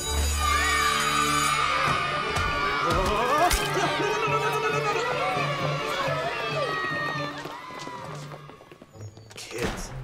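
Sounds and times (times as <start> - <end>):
children shouting and cheering: 0.0 - 8.8
film score music: 0.0 - 10.0.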